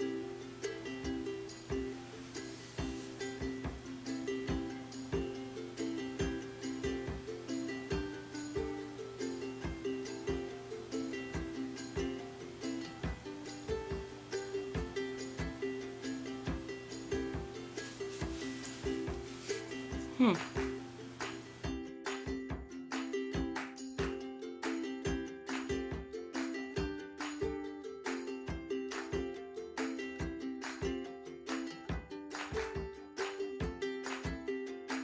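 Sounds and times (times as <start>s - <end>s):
plucked-string tune: 0.0s - 35.0s.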